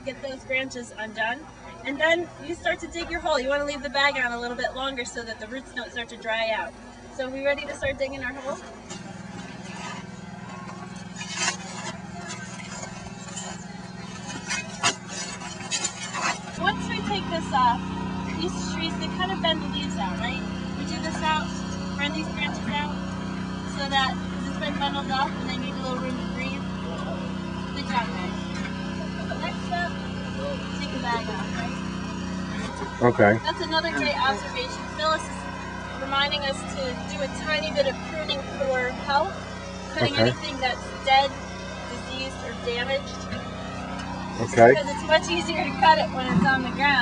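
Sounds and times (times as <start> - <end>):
indistinct voices talking: 0.0 - 47.0
steady low hum: 0.0 - 47.0.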